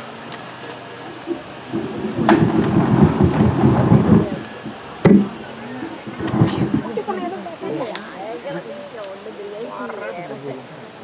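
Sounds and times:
microphone handling rumble: 0:01.2 - 0:07.4.

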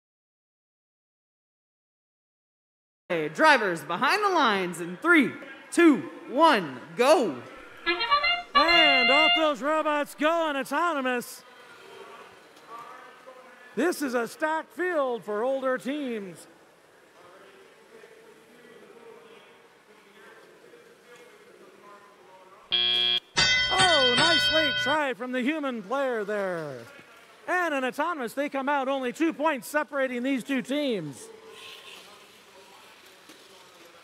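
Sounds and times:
arena background noise: 0:03.1 - 0:23.2, 0:24.0 - 0:34.0.

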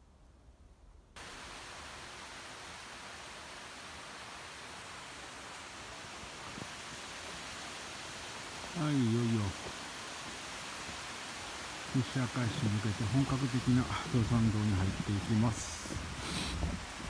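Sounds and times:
steady hiss: 0:00.0 - 0:17.0.

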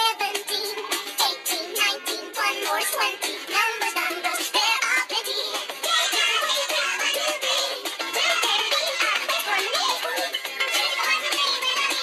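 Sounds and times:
children's song with sung vocals: 0:00.0 - 0:12.0.

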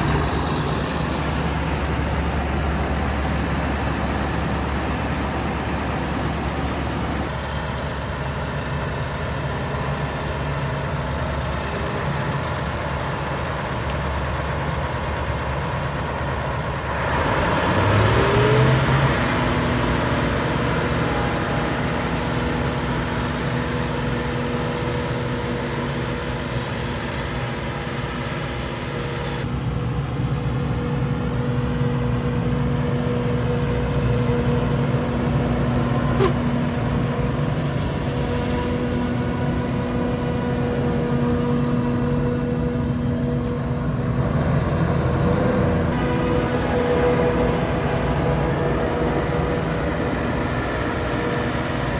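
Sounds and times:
forage harvester engine drone: 0:00.0 - 0:51.9.

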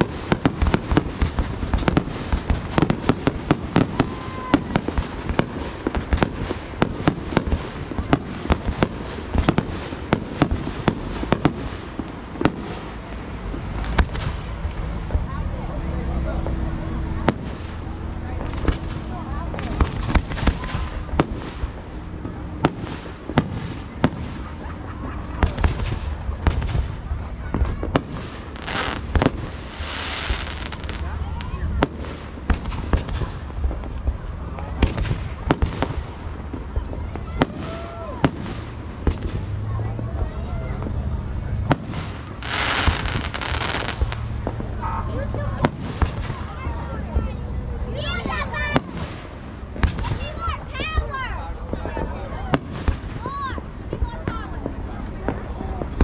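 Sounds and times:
firework hissing: 0:00.0 - 0:46.8
fireworks bursting with bangs: 0:00.0 - 0:56.0.

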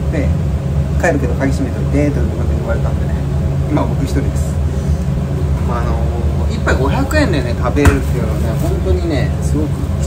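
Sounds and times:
kitchen equipment droning: 0:00.0 - 0:10.0.

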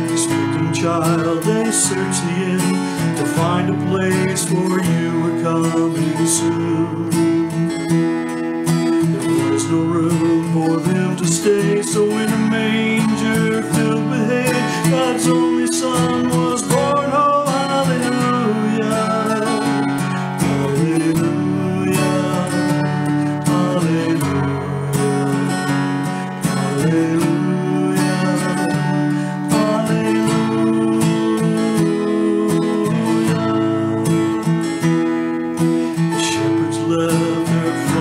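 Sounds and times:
acoustic guitar strumming: 0:00.0 - 0:38.0
man singing: 0:00.0 - 0:38.0.

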